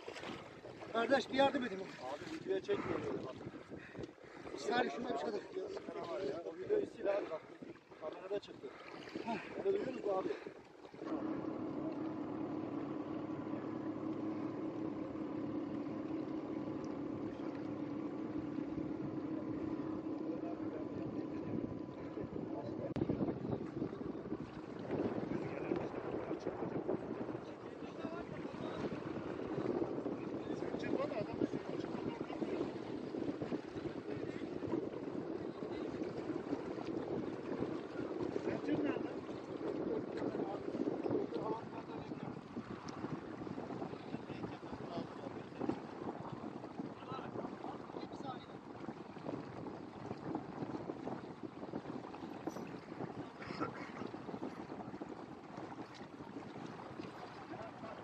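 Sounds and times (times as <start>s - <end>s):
water noise: 0.0s - 58.0s
wind: 0.0s - 58.0s
faint voices: 1.8s - 43.1s
steady hum of level tones: 11.0s - 23.1s.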